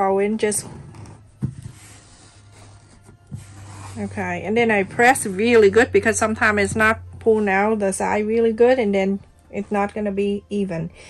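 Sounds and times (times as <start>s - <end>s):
quiet background music: 0.0s - 11.0s
hands rubbing fabric: 0.9s - 6.2s.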